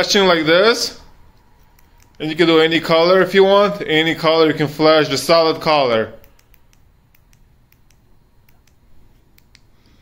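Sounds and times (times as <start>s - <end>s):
remote buttons clicking: 1.3s - 2.3s, 6.2s - 9.7s.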